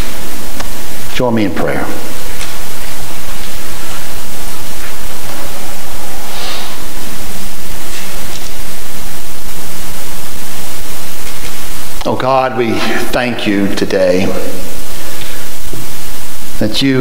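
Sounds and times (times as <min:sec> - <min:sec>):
electronic noise hiss: 0:00.0 - 0:17.0.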